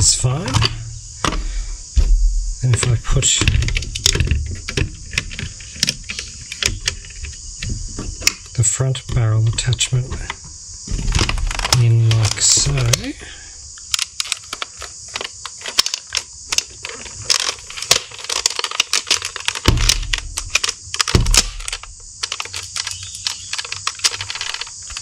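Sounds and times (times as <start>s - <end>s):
dull thumps: 0.0s - 13.1s, 16.6s - 25.0s
steady hiss: 0.0s - 25.0s
plastic parts clicking and rattling: 2.7s - 25.0s.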